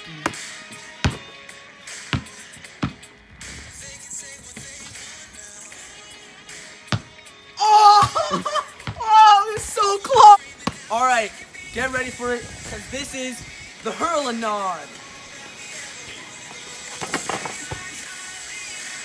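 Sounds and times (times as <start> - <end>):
quiet background music: 0.0 - 19.0
dull thumps: 6.9 - 7.2
group of young voices yelling: 9.0 - 10.4.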